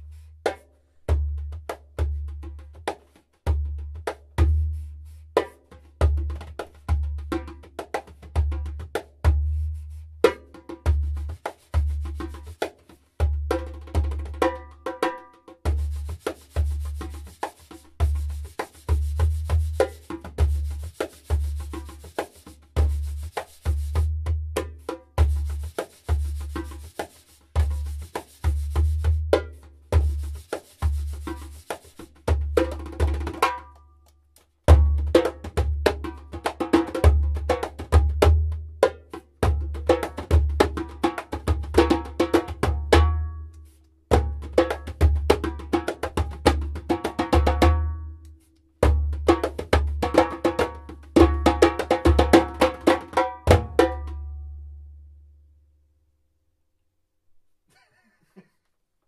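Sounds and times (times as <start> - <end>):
djembe played by hand: 0.4 - 33.9, 34.6 - 43.5, 44.1 - 48.2, 48.8 - 54.4.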